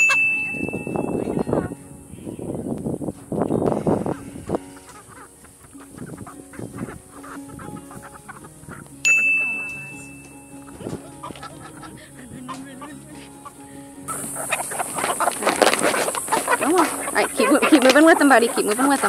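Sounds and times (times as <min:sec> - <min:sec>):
sharp bell-like ping: 0:00.0 - 0:01.4, 0:09.0 - 0:10.7
background music: 0:00.0 - 0:19.0
chickens fussing: 0:00.0 - 0:19.0.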